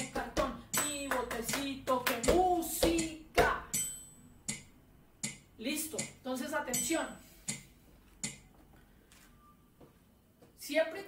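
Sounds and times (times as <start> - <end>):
sharp hand claps: 0.1 - 3.5.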